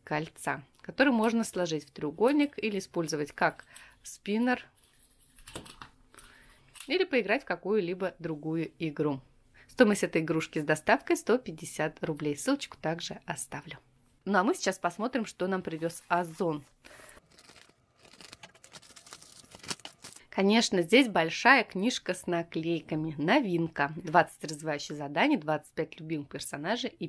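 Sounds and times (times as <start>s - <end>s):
plastic bag crinkling: 16.9s - 20.3s.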